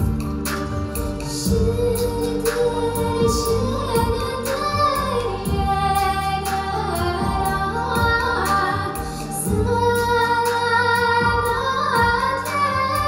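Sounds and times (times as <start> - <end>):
instrumental accompaniment with beat: 0.0 - 13.0
girl singing into a microphone: 1.2 - 13.0.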